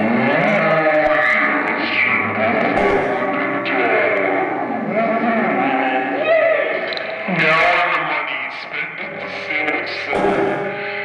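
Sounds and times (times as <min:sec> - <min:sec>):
noise-rock band playing: 0:10.1 - 0:11.0.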